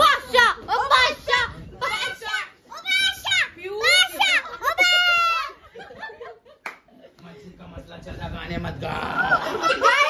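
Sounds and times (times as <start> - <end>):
girl shouting excitedly: 0.0 - 5.6, 9.7 - 10.0
woman shouting excitedly: 0.0 - 5.6.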